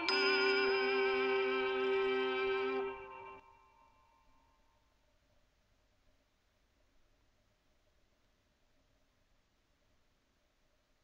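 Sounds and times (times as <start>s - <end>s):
early music ensemble chord: 0.0s - 3.5s.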